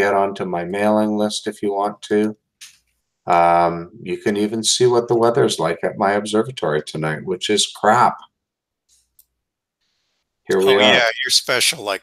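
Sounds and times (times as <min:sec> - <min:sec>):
man speaking: 0:00.0 - 0:02.4, 0:03.3 - 0:08.2, 0:10.5 - 0:12.0.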